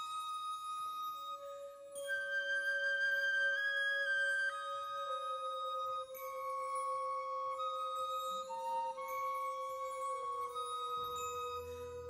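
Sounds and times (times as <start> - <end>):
held woodwind notes: 0.0 - 12.0.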